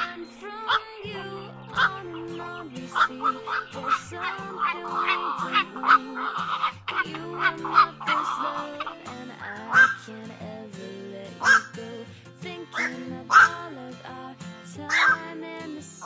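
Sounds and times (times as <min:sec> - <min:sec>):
herons calling: 0:00.0 - 0:10.6, 0:11.2 - 0:13.7, 0:14.8 - 0:15.4
pop music with singing: 0:00.0 - 0:16.0.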